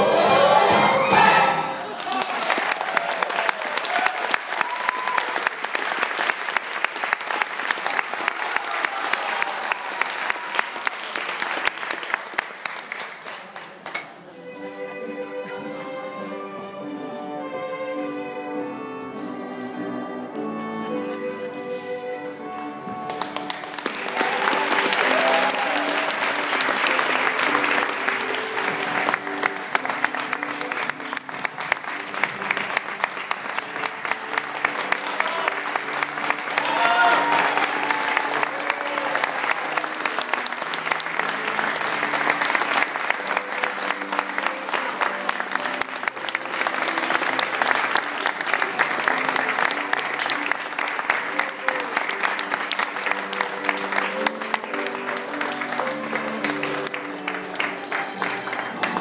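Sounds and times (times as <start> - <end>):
audience applauding: 1.7 - 14.3, 23.0 - 59.0
instrumental music: 14.2 - 59.0.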